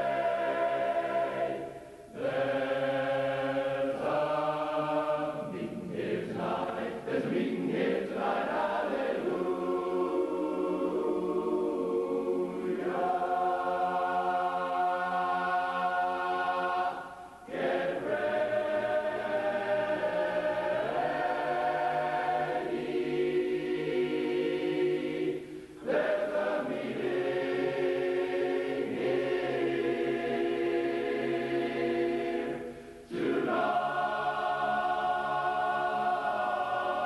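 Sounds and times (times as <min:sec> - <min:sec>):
men's chorus singing a cappella: 0:00.0 - 0:37.0.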